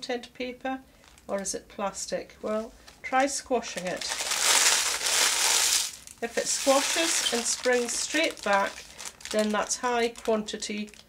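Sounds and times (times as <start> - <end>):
crisp wrapper crinkling: 1.0 - 1.5, 2.6 - 11.0.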